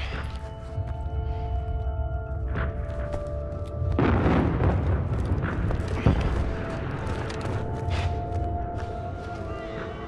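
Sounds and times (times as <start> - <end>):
heavy explosion boom: 4.0 - 6.6.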